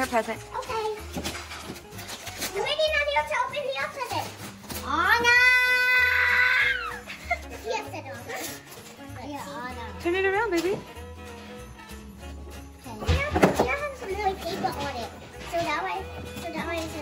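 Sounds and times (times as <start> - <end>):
background music: 0.0 - 17.0
child's wordless voice: 12.9 - 17.0.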